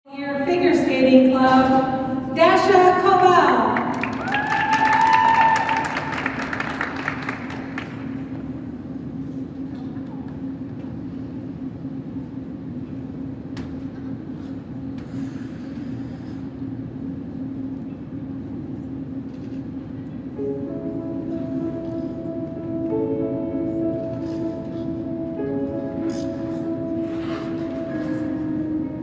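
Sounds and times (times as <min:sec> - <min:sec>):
low hum in ice arena: 0:00.1 - 0:29.0
audience applause and cheering: 0:03.8 - 0:08.2.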